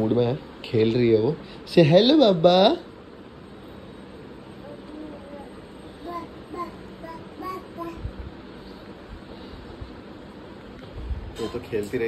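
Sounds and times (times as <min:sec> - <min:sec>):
toddler babbling: 0:04.6 - 0:08.1.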